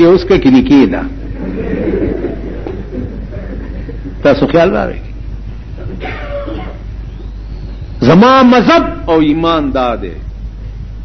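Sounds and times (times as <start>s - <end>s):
low recording hum: 0.0s - 11.0s.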